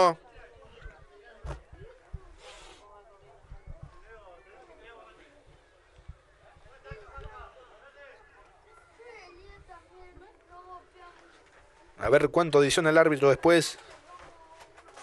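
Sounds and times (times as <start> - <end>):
people talking and calling: 0.0 - 15.0.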